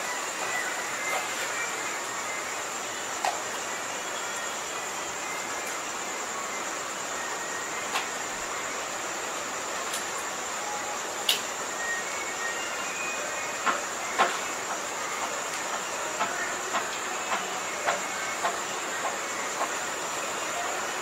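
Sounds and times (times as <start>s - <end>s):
faint high whine: 0.0s - 21.0s
steady background hiss: 0.0s - 21.0s.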